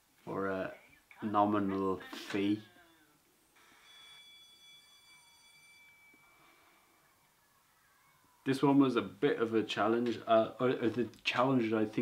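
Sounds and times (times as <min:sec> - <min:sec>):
faint high steady tone: 0:00.3 - 0:10.6.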